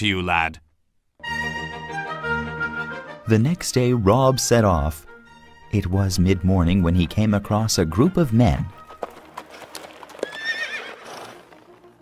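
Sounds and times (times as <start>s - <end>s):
hoof clop: 8.0s - 12.0s
horse whinnying: 9.0s - 11.7s.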